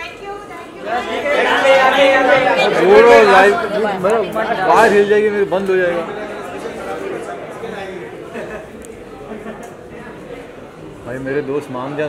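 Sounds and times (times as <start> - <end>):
people talking loudly: 0.0 - 12.0.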